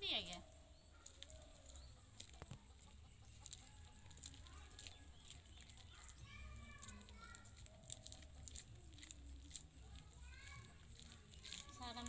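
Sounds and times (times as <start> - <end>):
maize kernels clicking: 0.0 - 12.0.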